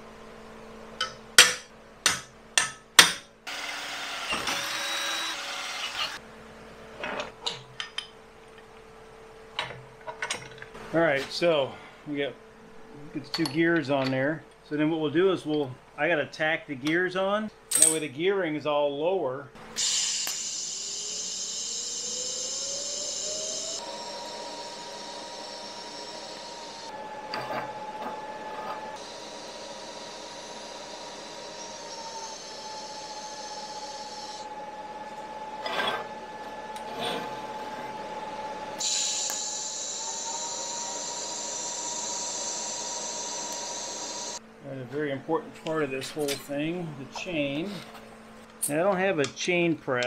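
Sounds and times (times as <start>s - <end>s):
welding arc whine and hiss: 0.0s - 8.0s, 19.6s - 44.8s.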